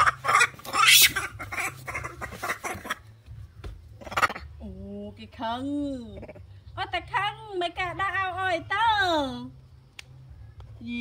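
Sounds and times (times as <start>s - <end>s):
monkey screeching: 0.0s - 3.0s, 4.0s - 4.5s
scuffling on bamboo slats: 0.5s - 3.9s.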